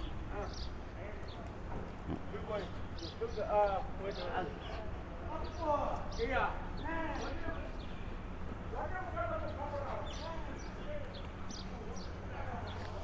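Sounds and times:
people talking and calling out: 0.0 - 13.0.

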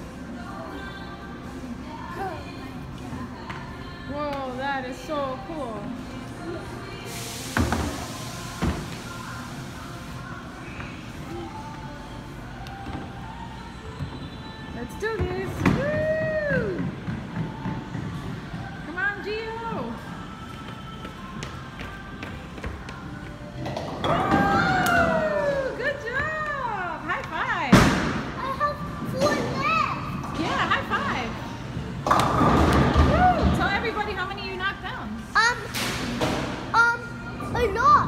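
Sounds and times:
pop music over loudspeakers: 0.0 - 38.0.

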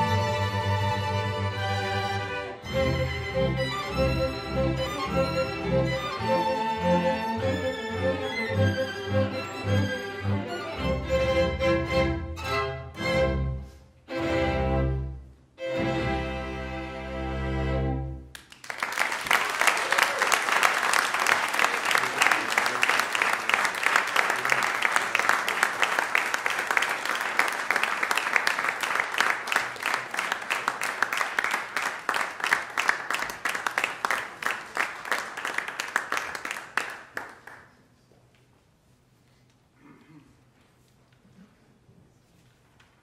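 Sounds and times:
string ensemble chord: 0.0 - 18.2
audience applauding: 18.3 - 37.8.

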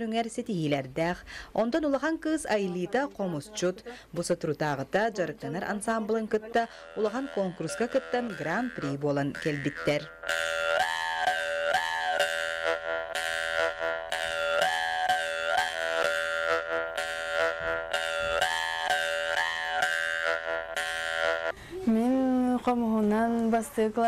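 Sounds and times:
jaw harp buzzing melody: 5.5 - 21.6.

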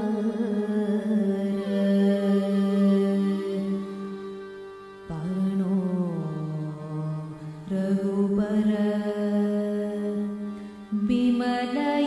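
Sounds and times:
devotional singing: 7.7 - 12.0.

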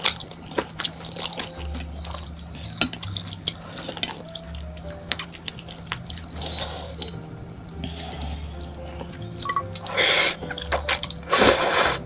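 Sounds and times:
person chewing noodles: 0.0 - 8.2
soft background music: 0.0 - 12.0.

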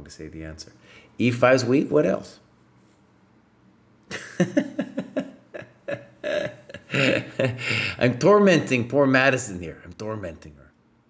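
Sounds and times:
man chuckling: 4.0 - 8.2.

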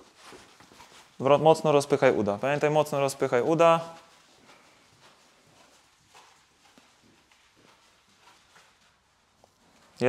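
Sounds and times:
soft footsteps on artificial turf: 0.0 - 10.0.

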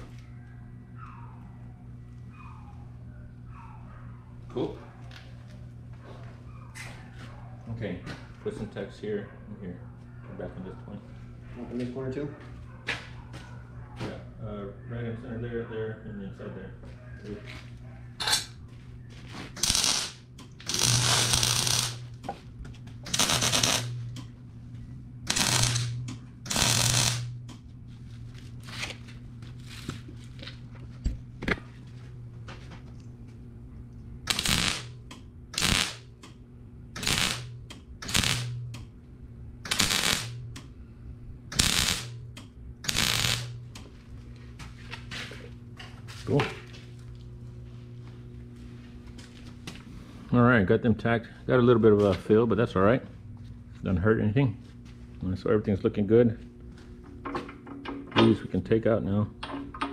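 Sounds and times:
steady low hum: 0.0 - 59.9
welder crackling bursts: 19.5 - 22.1, 23.0 - 24.0, 25.2 - 27.3, 34.2 - 36.1, 37.0 - 38.6, 39.6 - 40.4, 41.5 - 42.2, 42.8 - 43.8.

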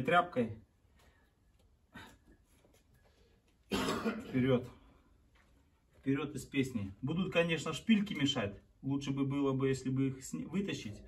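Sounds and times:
man speaking: 0.0 - 0.7, 4.2 - 5.0, 5.9 - 11.0
man's breathy cough-like burst: 3.7 - 4.3.

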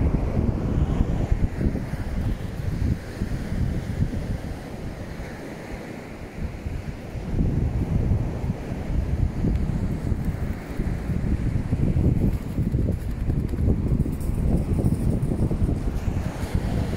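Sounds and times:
wind buffeting microphone: 0.0 - 16.9.

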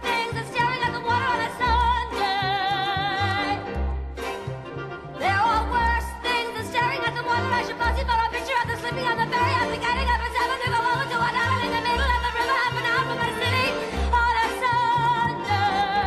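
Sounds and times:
pit orchestra playing: 0.0 - 16.0.

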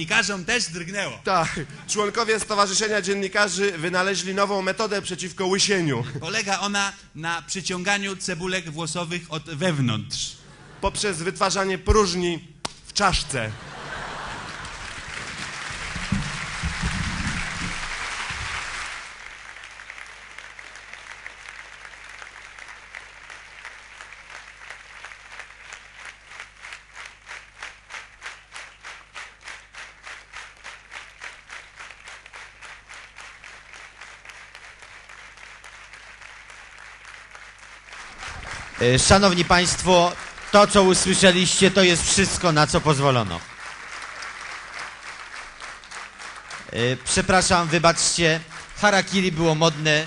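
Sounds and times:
audience applauding: 13.2 - 50.0
rhythmic clapping in unison: 13.7 - 50.0.

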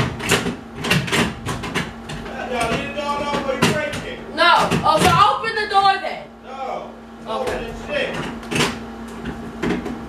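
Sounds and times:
mirror knocking against wooden door: 0.0 - 5.4.

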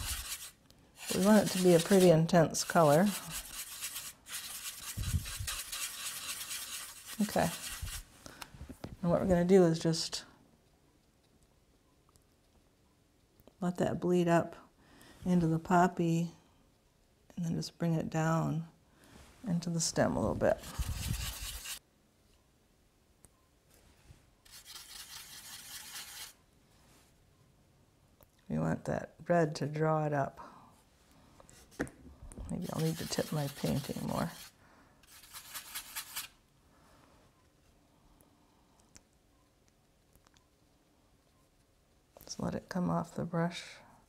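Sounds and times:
paintbrush scrubbing in palette: 0.0 - 8.1, 20.5 - 21.8, 24.4 - 26.4, 32.5 - 36.4.

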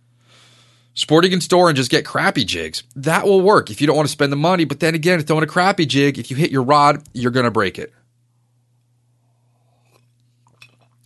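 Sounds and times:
low steady hum: 0.0 - 11.0
faint clinks of drink container: 10.4 - 11.0.

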